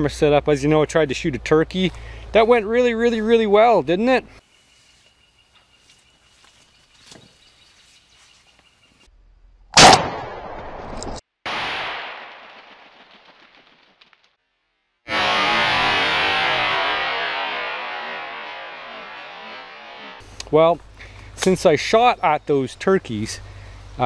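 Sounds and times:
gunshot with echo: 0:09.8 - 0:10.8
distorted electric guitar chord: 0:15.1 - 0:20.2.

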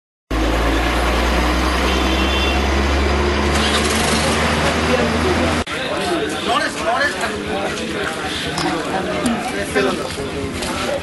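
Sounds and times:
vehicle engine running: 0:00.3 - 0:05.6.

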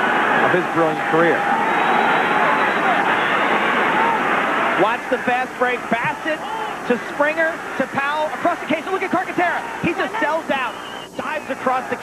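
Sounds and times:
crowd cheering: 0:00.0 - 0:12.0.

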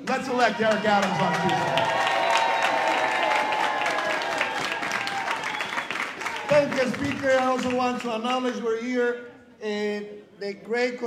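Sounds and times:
crowd applauding: 0:00.0 - 0:08.2
voices cheering: 0:00.1 - 0:07.8.

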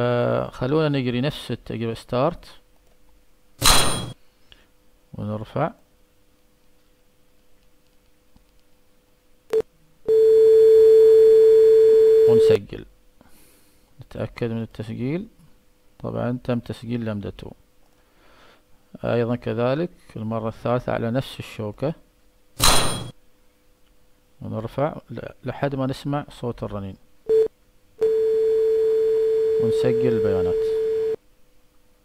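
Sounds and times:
metallic clang with bright ring: 0:03.6 - 0:04.2, 0:22.6 - 0:23.1
faint steady tuning fork hum: 0:09.5 - 0:12.6, 0:27.3 - 0:31.2
steady pure tone: 0:27.3 - 0:31.2.

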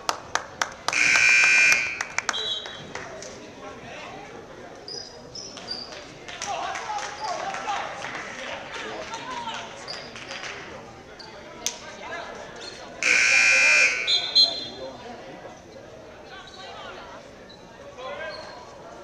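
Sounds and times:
voices in a gym: 0:00.0 - 0:19.0
scoreboard buzzer: 0:00.9 - 0:02.2, 0:13.0 - 0:14.4.

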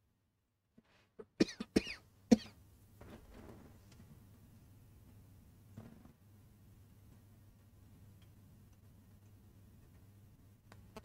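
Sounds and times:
faint steady hum: 0:00.0 - 0:11.0
person coughing: 0:01.2 - 0:02.6.

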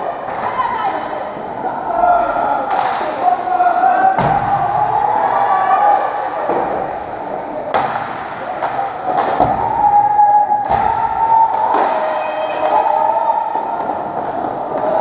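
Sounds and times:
hockey sticks and ball knocking: 0:06.4 - 0:10.0, 0:10.6 - 0:15.0.

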